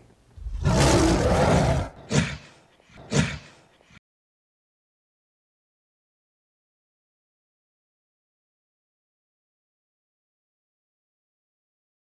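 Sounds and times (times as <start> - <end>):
deep animal roar: 0.4 - 2.4.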